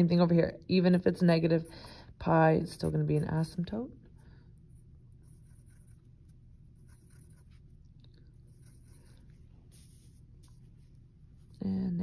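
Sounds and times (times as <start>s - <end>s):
low room hum: 0.0s - 12.0s
pencil scratching on paper: 4.7s - 11.6s.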